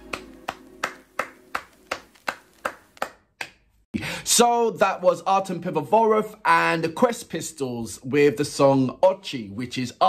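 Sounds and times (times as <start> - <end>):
hands clapping a beat: 0.0 - 3.8.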